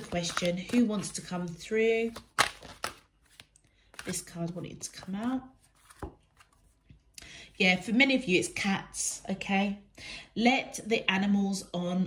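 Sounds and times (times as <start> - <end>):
cards being shuffled: 0.0 - 6.8
crisp card snaps: 2.1 - 4.2.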